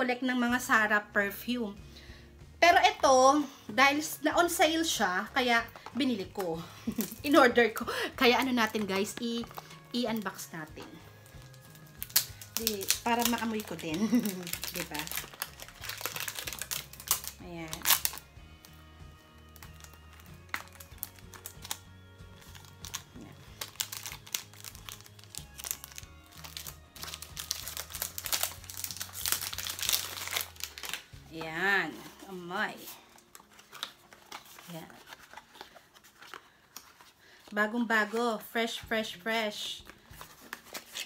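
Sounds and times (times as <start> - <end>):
soft background music: 0.0 - 41.0
plastic wrapping crinkling: 4.7 - 38.5, 39.7 - 41.0.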